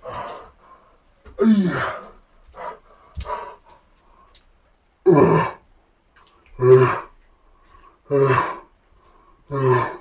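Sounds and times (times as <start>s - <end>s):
man grunting with effort: 1.4s - 2.1s, 5.1s - 5.6s, 6.6s - 7.1s, 8.1s - 8.7s, 9.5s - 10.0s.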